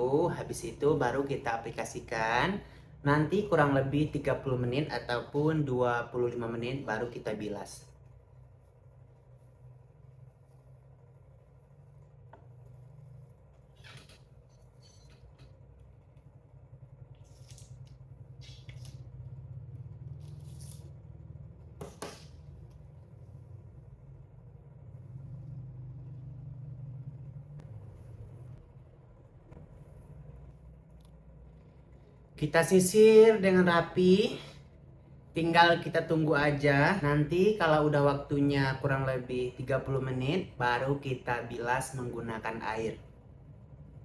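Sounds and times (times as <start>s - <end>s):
low hum: 0.0s - 37.6s
fingers squishing through wet hair: 17.0s - 21.2s.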